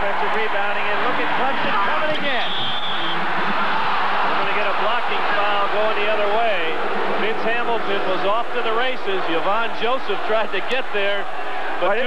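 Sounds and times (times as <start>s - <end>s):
crowd shouts: 0.0s - 12.0s
din of crowd voices: 0.0s - 12.0s.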